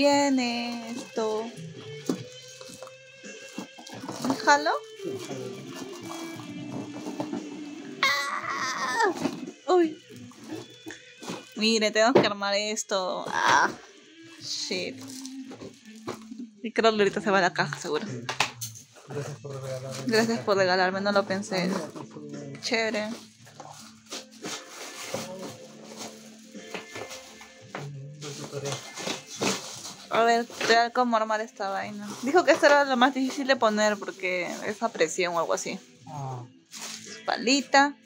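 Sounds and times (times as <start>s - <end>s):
background music: 0.0s - 38.0s
plastic wrapping crinkling: 0.5s - 7.7s, 8.5s - 11.8s, 14.9s - 16.5s, 22.8s - 35.6s.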